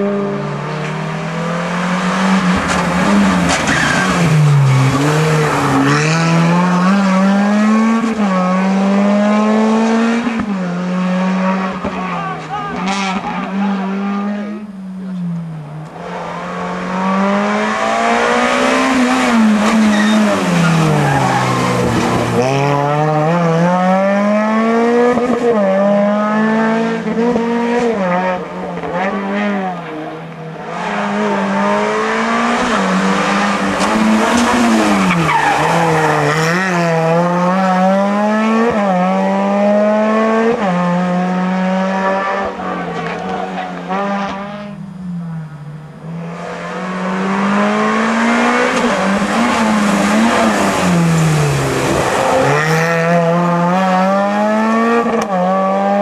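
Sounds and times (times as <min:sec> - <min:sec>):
rally car engines revving: 0:00.0 - 0:56.0
tyre squeal: 0:03.5 - 0:05.0, 0:19.8 - 0:22.0.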